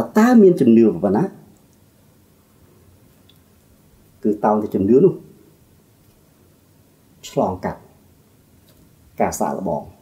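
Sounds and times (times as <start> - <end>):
man speaking: 0.0 - 1.5, 4.2 - 5.4, 7.2 - 8.0, 9.2 - 10.0.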